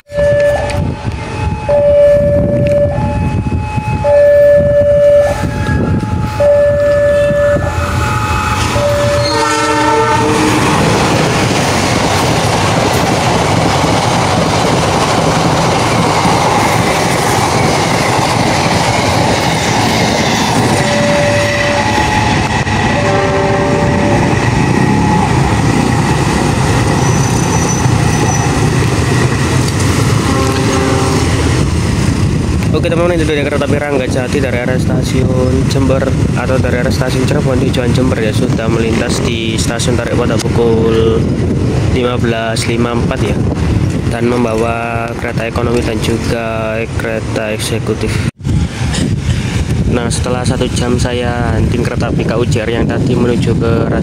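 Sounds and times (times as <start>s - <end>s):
train rushing past: 0.0s - 54.0s
train horn two-note blasts: 0.1s - 10.7s, 20.8s - 25.2s, 30.2s - 31.3s.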